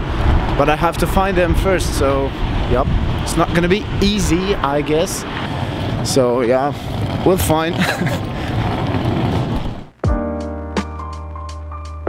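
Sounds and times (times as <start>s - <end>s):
wind buffeting microphone: 0.0s - 9.9s
person laughing: 7.7s - 8.5s.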